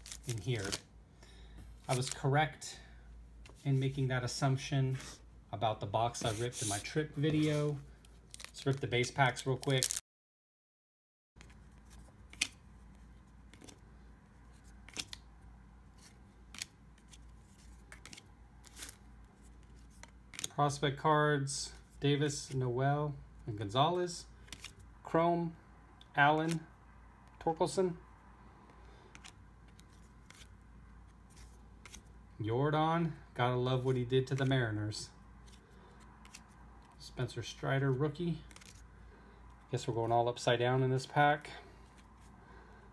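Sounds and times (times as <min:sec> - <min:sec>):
cards sliding off a stack: 0:06.2 - 0:07.7, 0:29.1 - 0:30.5
trading cards clicking and snapping: 0:12.3 - 0:12.6, 0:13.5 - 0:13.8, 0:14.8 - 0:15.2, 0:17.9 - 0:19.0, 0:19.9 - 0:20.5, 0:29.1 - 0:30.5.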